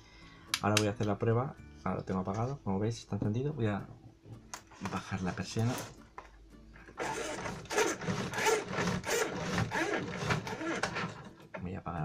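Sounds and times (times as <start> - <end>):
roller shutter being lowered: 4.8 - 6.0, 6.9 - 11.5.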